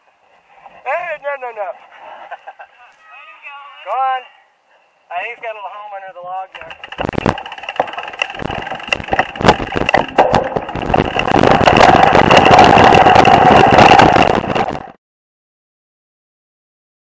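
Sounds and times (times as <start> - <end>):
bike clattering over bumps: 6.5 - 15.0
tyre rush on dirt: 6.6 - 15.0
wind rush: 6.7 - 15.0.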